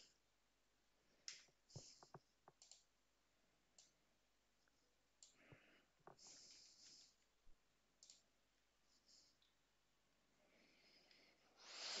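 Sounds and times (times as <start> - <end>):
keyboard and mouse clicks: 1.2 - 2.9, 8.0 - 8.3.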